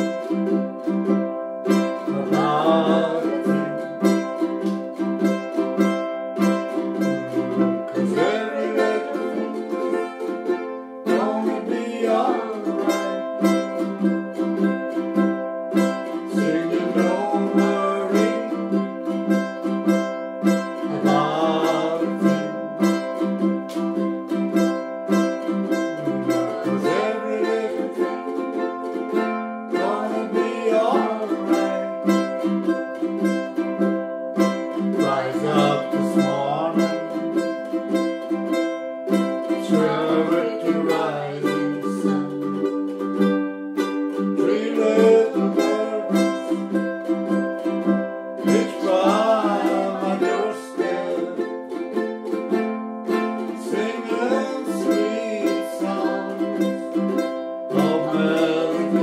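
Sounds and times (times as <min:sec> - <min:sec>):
ukuleles strumming chords: 0:00.0 - 0:59.0.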